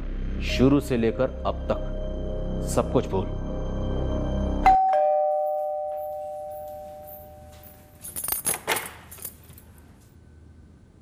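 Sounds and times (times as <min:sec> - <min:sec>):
two-note chime: 0:04.6 - 0:07.9.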